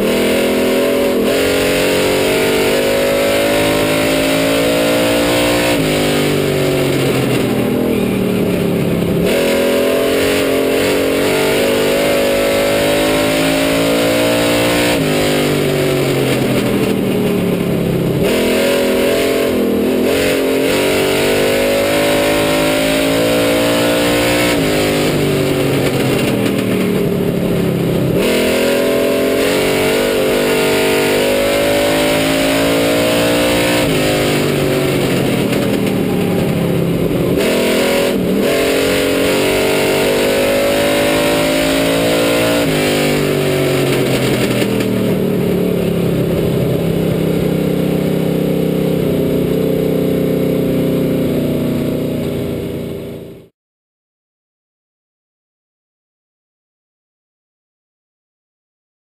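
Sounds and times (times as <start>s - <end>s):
race car engine revving: 0.0s - 49.6s.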